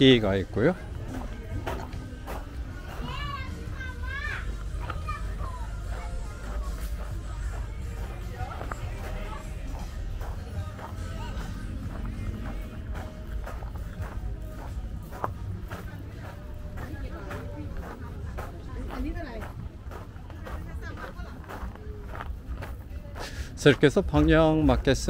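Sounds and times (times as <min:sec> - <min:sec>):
music playing: 0:00.0 - 0:25.0
people's voices: 0:00.0 - 0:25.0
steady low rumble: 0:00.4 - 0:23.1.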